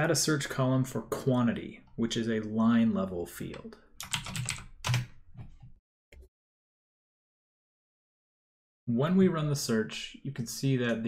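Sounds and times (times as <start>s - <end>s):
man speaking: 0.0s - 3.9s, 8.9s - 11.0s.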